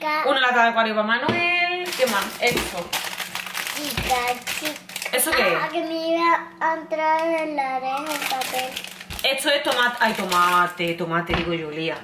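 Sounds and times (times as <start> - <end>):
child's voice: 0.0 - 0.3, 3.7 - 8.8
plastic bag crinkling: 1.8 - 5.8, 7.2 - 11.0.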